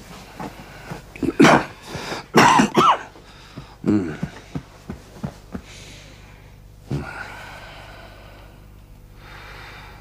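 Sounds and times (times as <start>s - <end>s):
person coughing: 1.2s - 3.1s.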